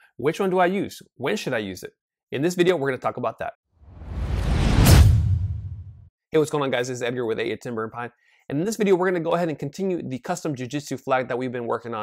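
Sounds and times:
whoosh with deep rumble: 0:03.9 - 0:06.0.

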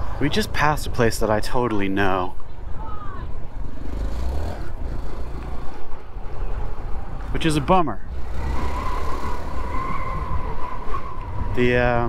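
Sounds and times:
wind noise: 0:05.6 - 0:12.0.

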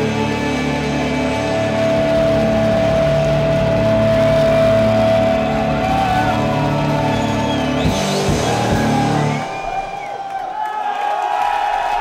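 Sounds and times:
live rock band droning notes: 0:00.0 - 0:09.9.

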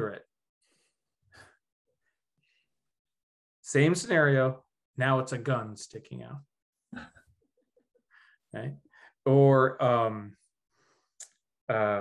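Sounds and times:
man breathing softly: 0:00.6 - 0:02.8, 0:08.1 - 0:09.2, 0:10.7 - 0:11.2.

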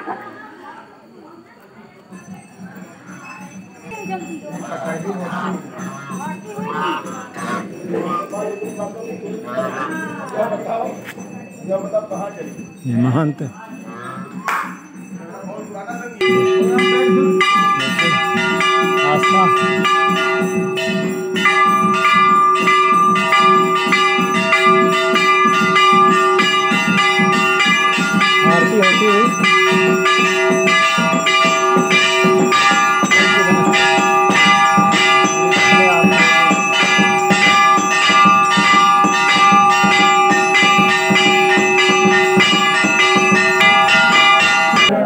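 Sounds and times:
temple bells ringing rapidly: 0:02.1 - 0:45.0.

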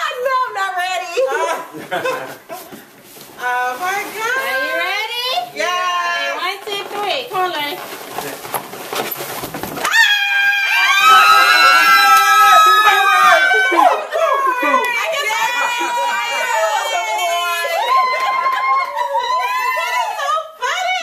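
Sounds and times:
women shrieking and screaming: 0:09.8 - 0:20.5
excited exclamations: 0:09.9 - 0:20.3.

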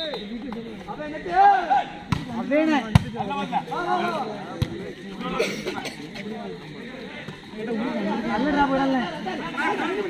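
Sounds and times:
people shouting: 0:01.0 - 0:02.2.

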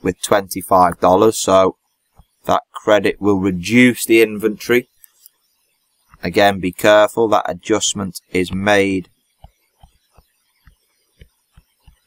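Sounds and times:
stylus tapping on tablet: 0:09.4 - 0:12.0.

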